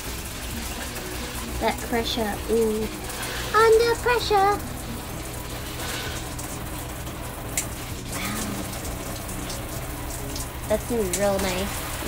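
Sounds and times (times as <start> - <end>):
shower spraying on tiled wall: 0.0 - 12.0.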